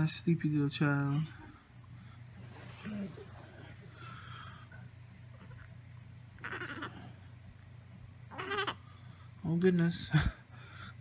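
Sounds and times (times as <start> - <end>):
low room hum: 0.0 - 11.0
baby squeaky grunt: 8.3 - 8.8.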